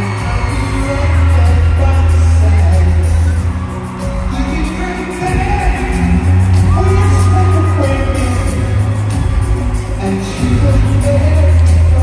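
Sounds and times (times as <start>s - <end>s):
lead voice singing: 0.0s - 12.0s
live band playing pop-rock: 0.0s - 12.0s.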